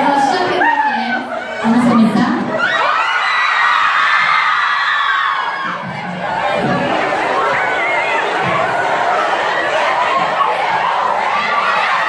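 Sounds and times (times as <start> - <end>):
crowd screaming and cheering: 0.0 - 12.0
scattered shouts: 0.2 - 12.0.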